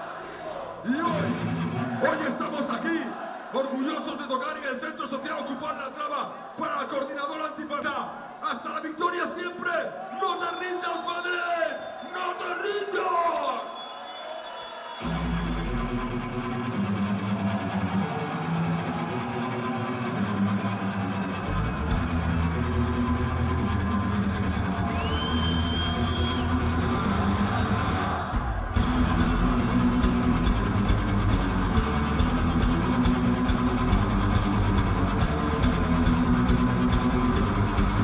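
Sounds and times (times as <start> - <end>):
heavy rock band playing: 20.0 - 38.0
drums and cymbals: 21.9 - 38.0
low repeating guitar riff: 28.7 - 38.0.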